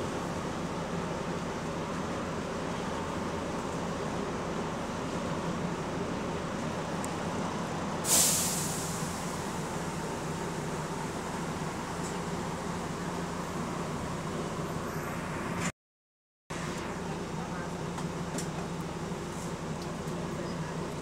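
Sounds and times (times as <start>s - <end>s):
bus engine running: 0.0s - 15.7s, 16.5s - 21.0s
compressed air hiss: 8.1s - 9.4s.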